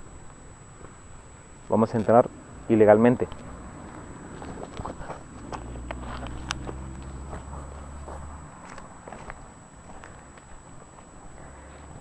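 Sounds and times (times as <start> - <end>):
footsteps on dry grass: 3.3 - 12.0.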